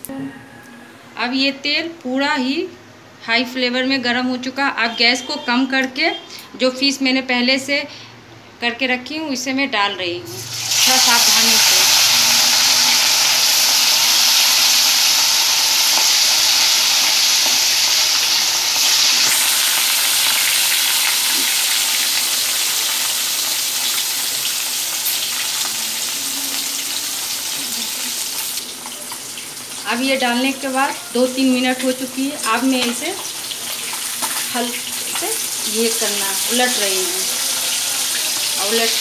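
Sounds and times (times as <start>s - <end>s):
fish sizzling in hot oil: 10.3s - 39.0s.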